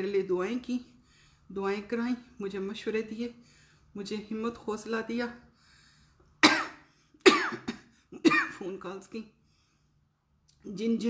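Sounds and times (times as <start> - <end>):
woman coughing: 6.4 - 8.7.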